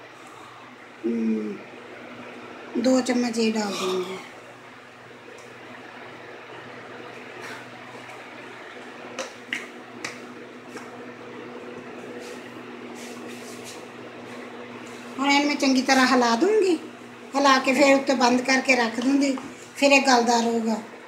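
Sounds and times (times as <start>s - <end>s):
low steady hum: 0.0s - 21.0s.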